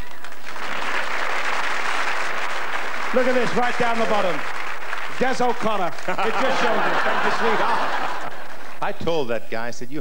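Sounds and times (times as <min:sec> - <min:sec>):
theatre audience applauding: 0:00.0 - 0:08.9.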